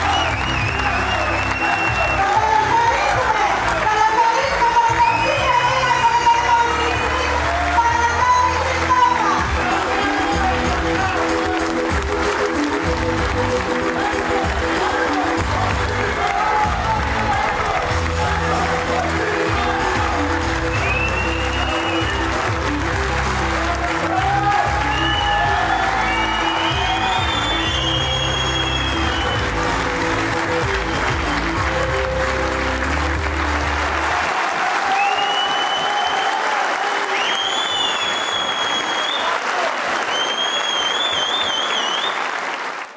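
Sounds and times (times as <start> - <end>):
shrill whistles: 0.0 - 2.2, 20.7 - 22.3, 24.9 - 29.4, 35.0 - 39.4, 40.0 - 42.3
crowd applauding: 0.0 - 42.9
loud music with heavy bass: 9.2 - 34.1.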